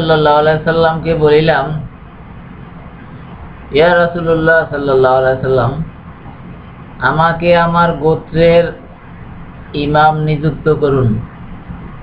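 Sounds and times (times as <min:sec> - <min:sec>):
man chanting: 0:00.0 - 0:01.9, 0:03.7 - 0:06.0, 0:07.0 - 0:09.0, 0:09.7 - 0:11.3.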